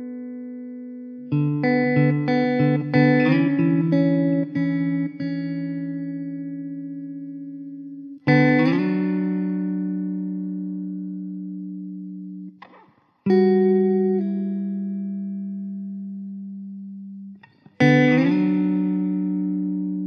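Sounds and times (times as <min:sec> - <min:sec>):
plucked string instrument music: 0:01.3 - 0:15.9.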